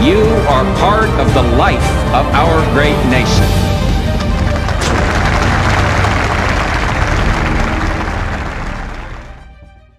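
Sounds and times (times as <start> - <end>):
music: 0.0 - 9.9
audience applauding: 4.0 - 9.7.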